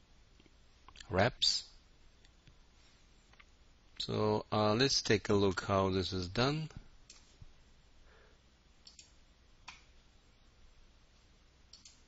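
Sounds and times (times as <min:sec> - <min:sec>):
faint computer mouse clicks: 0:08.8 - 0:09.9, 0:11.2 - 0:12.0.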